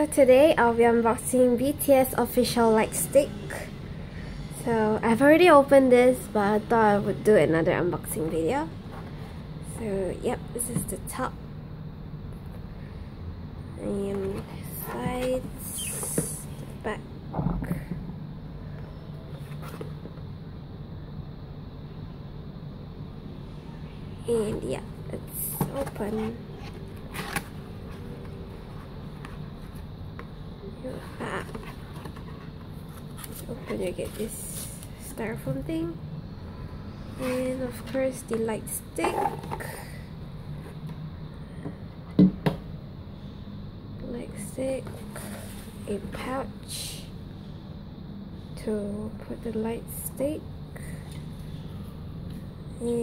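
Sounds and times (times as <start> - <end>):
low background hum: 0.0 - 53.0.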